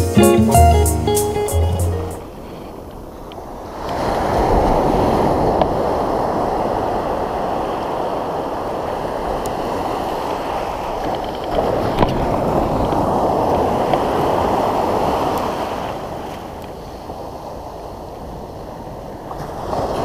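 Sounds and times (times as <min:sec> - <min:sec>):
ocean surf breaking: 0:00.0 - 0:20.0.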